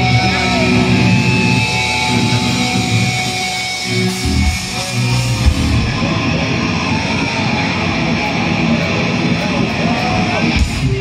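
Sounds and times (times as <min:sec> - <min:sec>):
electric guitars: 0:00.0 - 0:11.0
thrash metal band playing live: 0:00.0 - 0:11.0.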